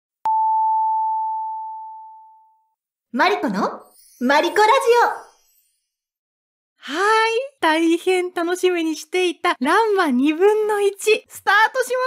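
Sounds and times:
high chime tone: 0:03.8 - 0:06.1.

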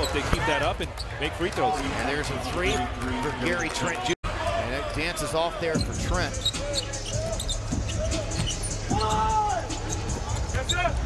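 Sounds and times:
shoe squeaks: 0:04.8 - 0:11.0.

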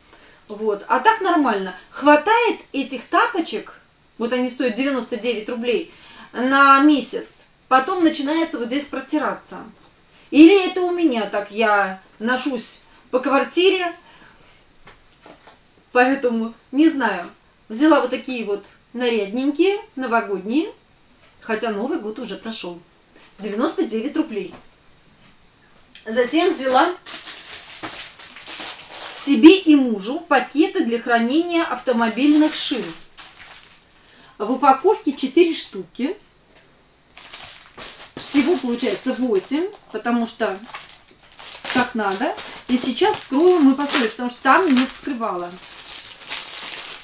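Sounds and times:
woman speaking: 0:00.5 - 0:14.0, 0:16.0 - 0:20.8, 0:21.4 - 0:22.8, 0:23.4 - 0:24.6, 0:26.0 - 0:27.0, 0:29.1 - 0:33.1, 0:34.4 - 0:36.2, 0:38.2 - 0:40.9, 0:41.6 - 0:45.7
plastic packaging crinkling: 0:26.4 - 0:29.4, 0:31.7 - 0:34.0, 0:37.1 - 0:47.0.

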